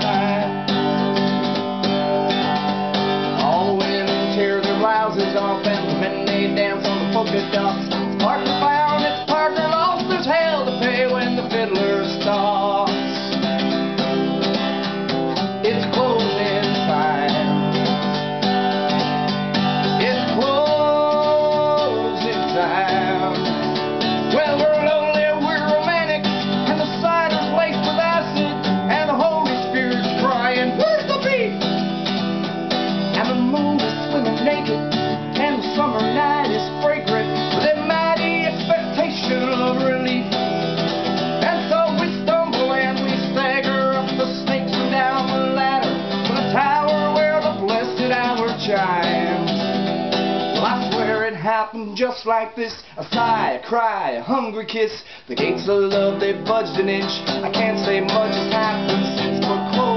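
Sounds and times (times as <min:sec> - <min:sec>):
acoustic guitar strumming: 0:00.0 - 0:59.9
man singing: 0:00.0 - 0:59.9.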